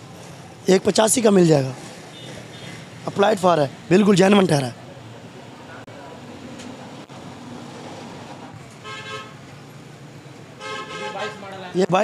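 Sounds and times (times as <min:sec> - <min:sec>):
street traffic noise: 0:00.0 - 0:12.0
vehicle horn toot: 0:02.1 - 0:02.8, 0:08.8 - 0:09.4, 0:10.6 - 0:11.5.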